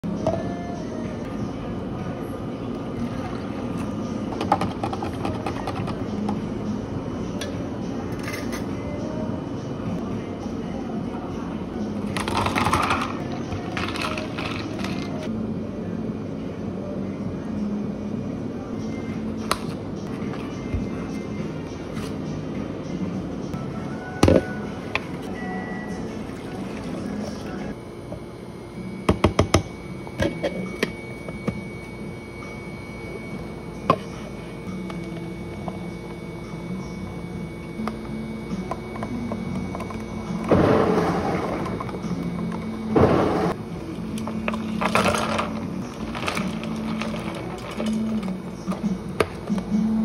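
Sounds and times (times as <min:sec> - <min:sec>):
refrigeration hum: 0:00.0 - 0:50.0
plastic cup with ice clinking: 0:12.2 - 0:15.2, 0:44.2 - 0:48.8.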